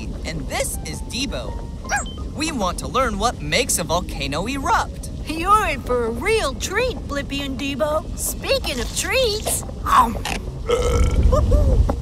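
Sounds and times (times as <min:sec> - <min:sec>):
low rumble: 0:00.0 - 0:12.0
long deep cartoon burp: 0:10.6 - 0:11.4.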